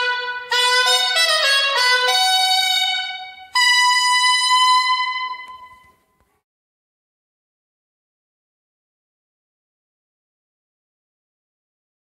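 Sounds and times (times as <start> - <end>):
woodwind holding a note: 0.0 - 6.0.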